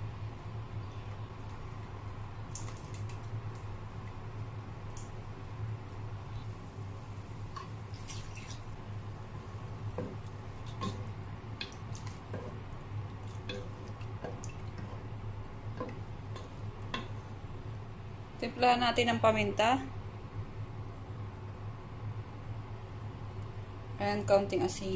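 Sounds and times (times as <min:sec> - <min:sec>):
steady low hum: 0:00.0 - 0:24.9
liquid popping in a pot: 0:02.5 - 0:04.2, 0:09.9 - 0:17.2.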